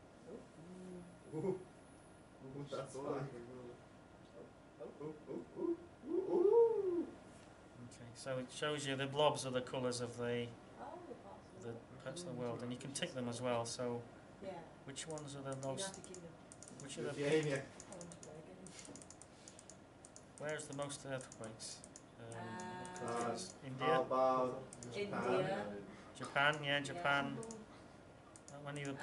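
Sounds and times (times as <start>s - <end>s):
person saying ooh: 5.0s - 7.1s
typing on computer keyboard: 15.1s - 16.9s, 17.8s - 22.1s, 28.4s - 29.0s.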